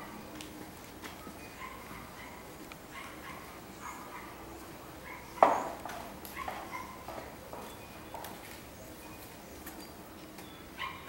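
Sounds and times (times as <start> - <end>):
dog barking: 1.6 - 4.4, 5.0 - 5.6, 6.3 - 7.0, 10.8 - 11.0.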